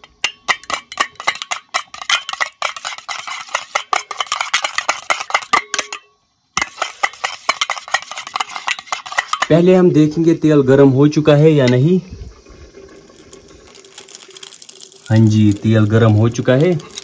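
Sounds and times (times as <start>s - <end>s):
spoon beating eggs in metal bowl: 0.0s - 6.0s, 6.6s - 9.5s, 13.2s - 17.0s.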